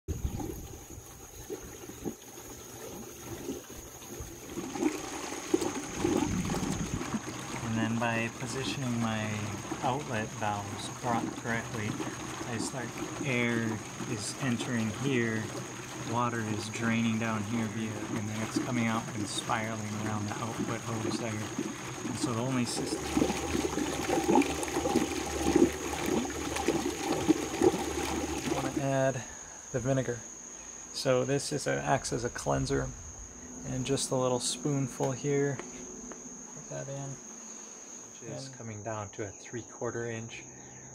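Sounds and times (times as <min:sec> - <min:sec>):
liquid churning in a vortex: 0:00.1 - 0:28.9
water gurgling and bubbling: 0:00.1 - 0:29.4
faint high whine: 0:03.1 - 0:40.9.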